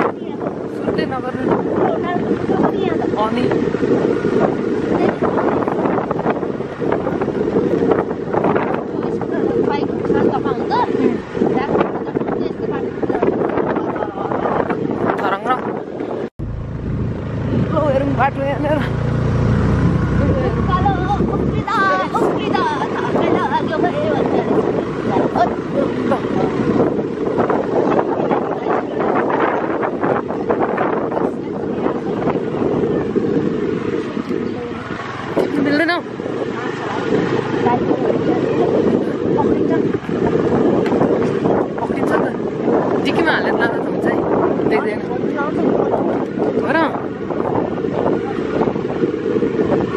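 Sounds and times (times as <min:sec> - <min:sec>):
motorcycle engine rumbling: 0:00.0 - 0:49.9
voices: 0:00.0 - 0:49.9
wind buffeting microphone: 0:00.0 - 0:49.9
motorbike engine running: 0:16.4 - 0:28.2.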